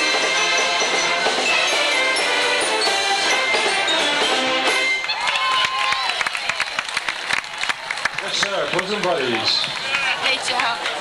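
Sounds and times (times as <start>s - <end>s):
string band playing: 0.0s - 5.3s
crowd voices: 0.0s - 11.0s.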